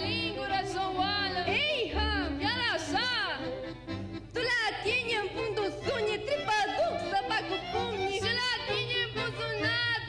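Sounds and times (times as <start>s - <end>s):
women singing folk song: 0.0s - 3.4s, 4.4s - 10.0s
folk orchestra with violins: 0.0s - 10.0s.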